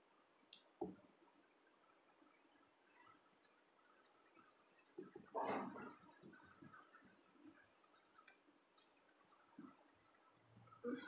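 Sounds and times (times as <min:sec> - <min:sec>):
pencil scratching on paper: 0:03.2 - 0:10.9.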